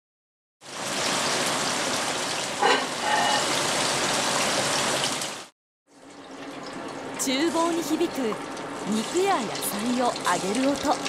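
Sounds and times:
food sizzling in frying pan: 1.0s - 5.5s.

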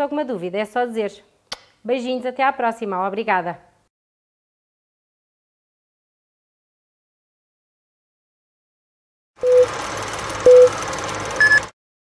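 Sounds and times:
short high-pitched beep: 10.5s - 10.7s, 11.4s - 11.7s
short low beep: 10.5s - 10.7s, 11.4s - 11.7s.

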